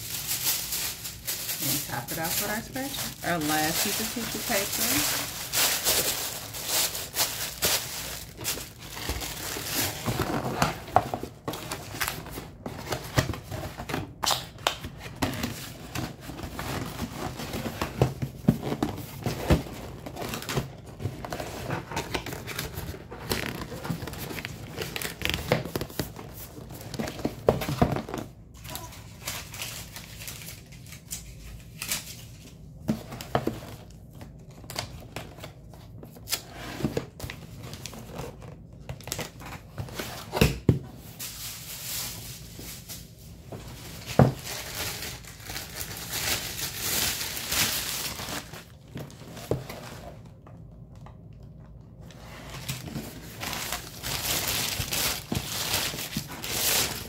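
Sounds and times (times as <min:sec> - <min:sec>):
paper and plastic crinkling: 0:00.0 - 0:40.4, 0:41.0 - 0:50.4, 0:51.5 - 0:57.0.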